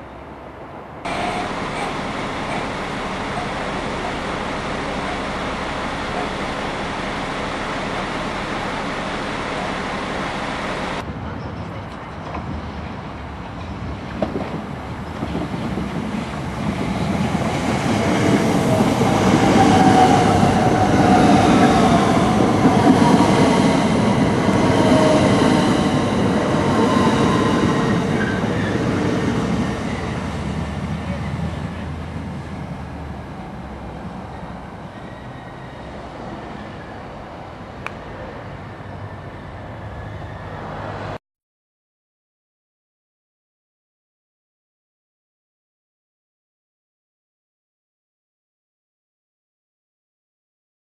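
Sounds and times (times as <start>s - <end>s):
electric train passing: 0.0s - 11.3s, 12.3s - 41.2s
passing works train rumble: 0.0s - 41.2s
train motor whine: 1.1s - 11.0s.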